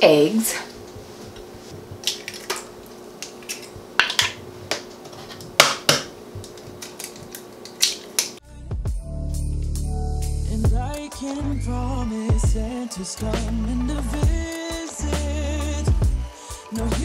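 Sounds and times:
eggs cracking on a bowl rim: 0:02.0 - 0:04.9, 0:05.6 - 0:08.4
background music: 0:08.4 - 0:17.0.

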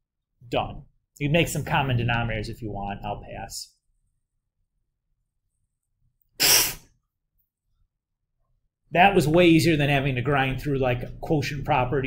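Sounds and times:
person sneezing: 0:06.4 - 0:07.0.

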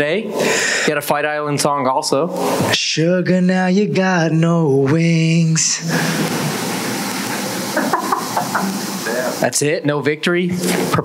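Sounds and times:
people applauding: 0:05.9 - 0:09.4.

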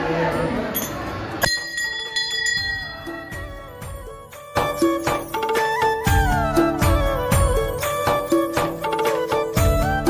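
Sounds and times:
brass bell ringing: 0:00.4 - 0:05.5.

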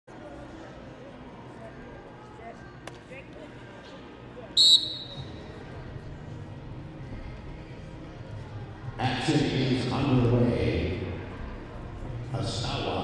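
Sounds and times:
murmur of arena crowd: 0:00.1 - 0:13.0
referee's whistle blast: 0:04.6 - 0:05.3.

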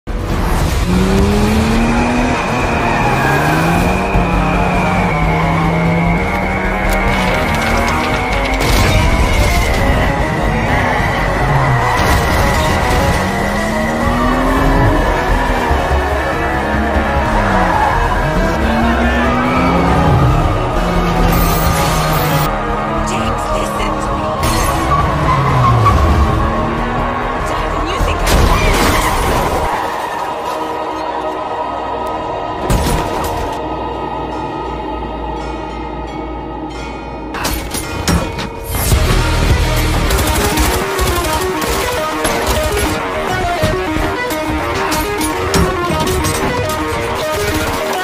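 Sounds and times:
car engine accelerating hard: 0:00.1 - 0:08.6, 0:09.8 - 0:28.4
dramatic film score: 0:00.1 - 0:48.0.

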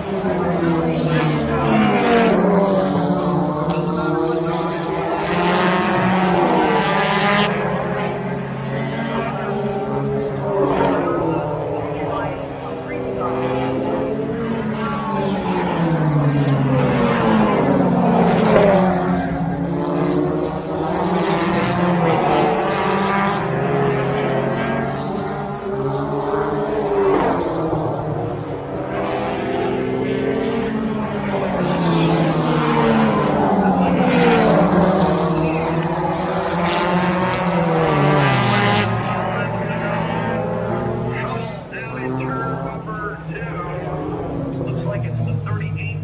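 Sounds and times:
race car engines passing at high revs: 0:00.0 - 0:46.0.

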